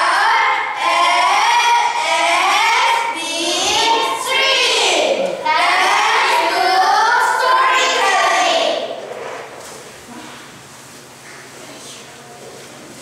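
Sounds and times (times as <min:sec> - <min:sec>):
children singing together: 0:00.0 - 0:09.0.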